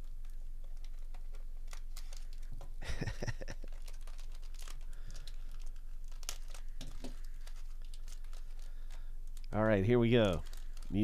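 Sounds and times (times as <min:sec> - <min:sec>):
foil wrapper crinkling and tearing: 0:00.0 - 0:11.0.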